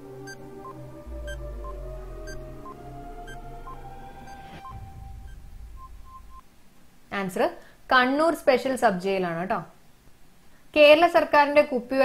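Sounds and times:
countdown timer music: 0.0 - 6.4
ticking high and low beeps: 0.2 - 6.4.

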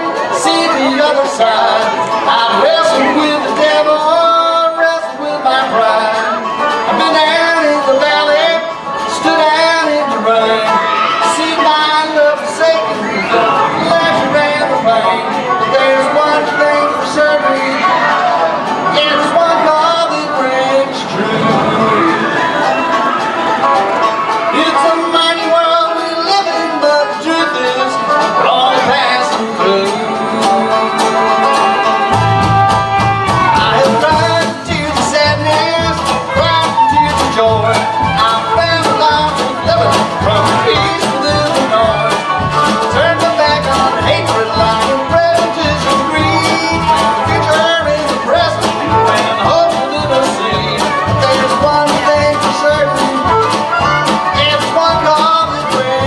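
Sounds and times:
banjo picking: 0.0 - 56.0
bluegrass band playing: 0.0 - 56.0
upright bass beat: 24.6 - 56.0.

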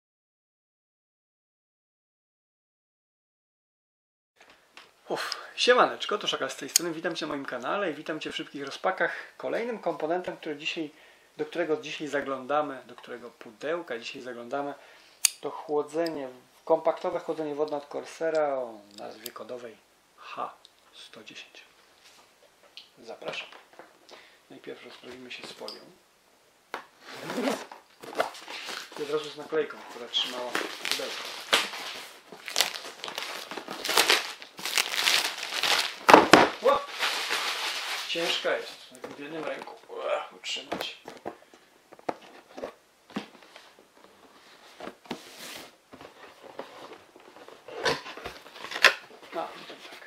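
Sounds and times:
plastic shrink-wrap tearing: 30.3 - 38.3.

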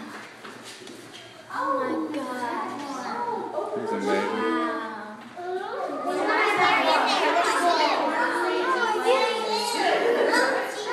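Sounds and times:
young children talking and calling out: 1.4 - 10.9.

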